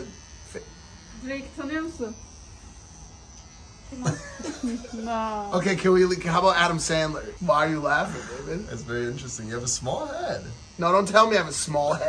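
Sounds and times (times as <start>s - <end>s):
electric hair clippers buzzing: 0.0s - 12.0s.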